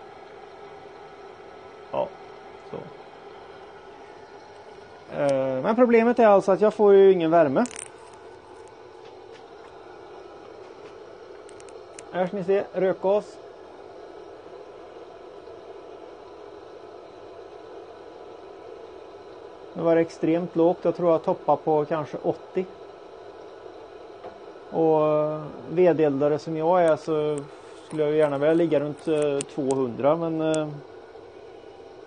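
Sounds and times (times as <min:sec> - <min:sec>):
pellet burner blower whirring: 0:00.0 - 0:32.0.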